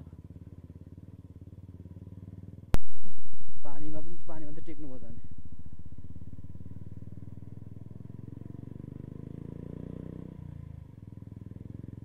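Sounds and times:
motorcycle engine pulsing: 0.0s - 12.0s.

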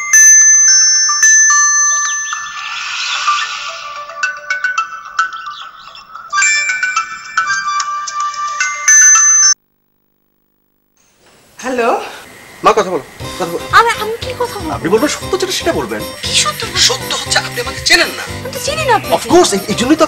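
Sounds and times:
mobile phone ringtone: 0.0s - 9.6s.

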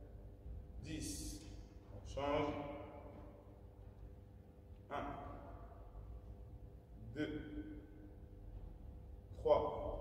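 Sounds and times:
man counting in echoing hall: 0.8s - 3.5s, 4.8s - 6.2s, 6.8s - 8.2s, 9.2s - 10.0s.

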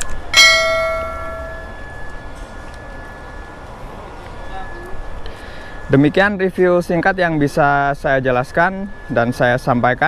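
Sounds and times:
bell chime ringing: 0.3s - 6.2s.

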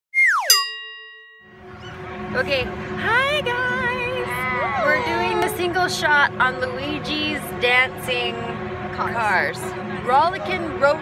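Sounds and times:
bright ding: 0.5s - 1.6s.

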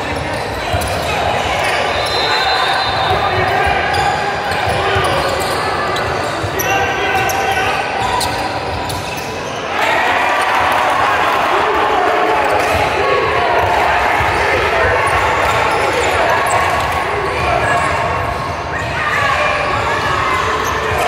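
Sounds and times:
players and spectators shouting: 0.0s - 21.0s.

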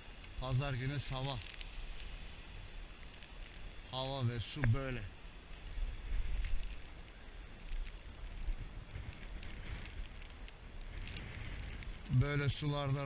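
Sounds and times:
wind buffeting microphone: 5.7s - 13.0s
faint high chirps: 6.6s - 8.4s.

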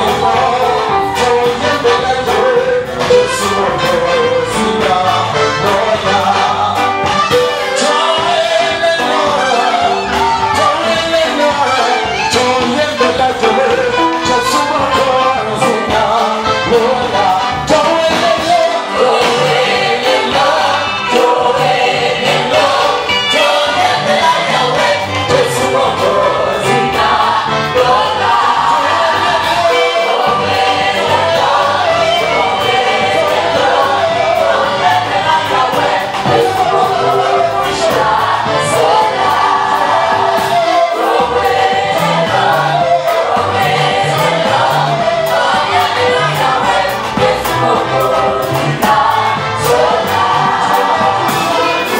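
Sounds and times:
band with electric guitars: 0.0s - 51.9s
bass: 0.0s - 51.9s
drum kit: 0.0s - 51.9s
electronic keyboard: 0.0s - 51.9s
lead singer and women's choir: 0.0s - 51.9s.

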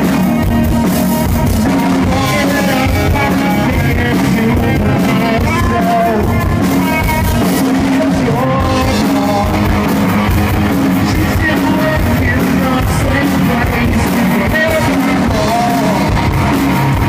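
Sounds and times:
drums: 0.0s - 17.0s
electric guitar: 0.0s - 17.0s
man singing into microphone: 1.6s - 16.5s.

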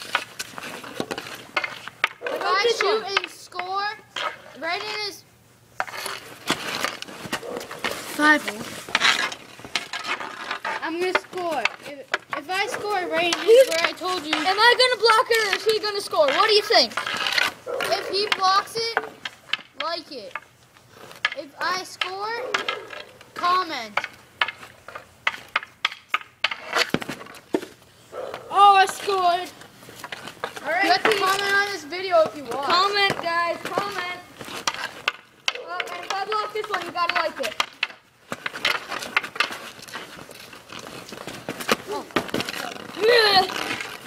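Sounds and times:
hockey sticks knocking: 0.0s - 5.2s, 5.8s - 44.0s.

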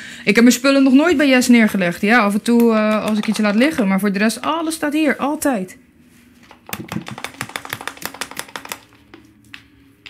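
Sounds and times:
faint steady hum: 0.0s - 10.0s
rapid light clicks: 6.7s - 9.1s.

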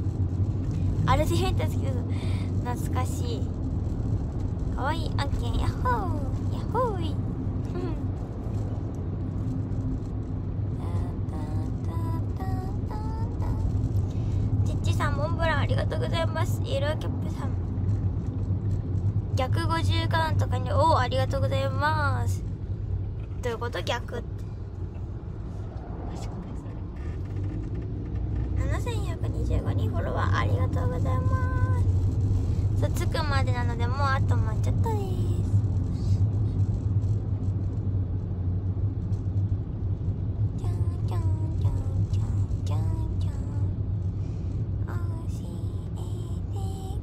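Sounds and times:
car interior drone: 0.0s - 47.0s
woman speaking: 1.1s - 3.5s, 4.8s - 7.2s, 14.7s - 17.6s, 19.4s - 22.4s, 23.4s - 24.4s, 28.6s - 31.8s, 32.8s - 35.4s.

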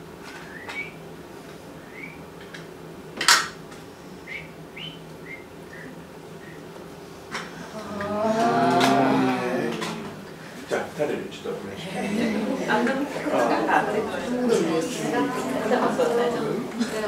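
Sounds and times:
person humming: 7.6s - 10.4s.

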